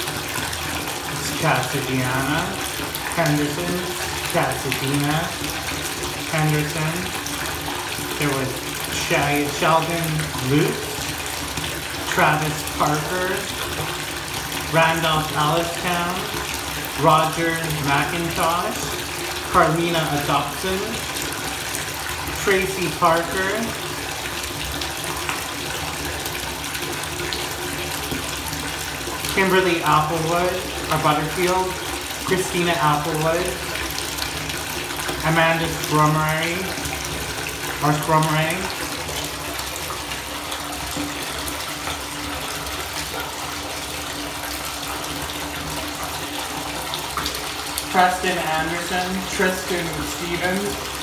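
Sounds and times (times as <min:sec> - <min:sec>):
water running into bathtub: 0:00.0 - 0:51.0.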